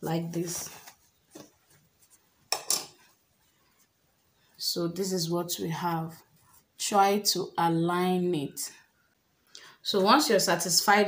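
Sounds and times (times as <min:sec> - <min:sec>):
cloth rustling: 0:00.3 - 0:04.6.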